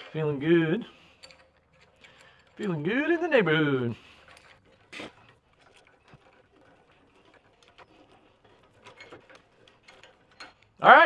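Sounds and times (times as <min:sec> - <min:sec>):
metallic clicks of vise screw: 0:01.0 - 0:02.8.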